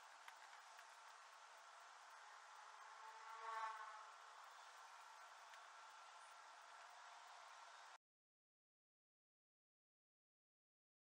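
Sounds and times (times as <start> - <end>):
faint steady hiss: 0.0 - 8.0.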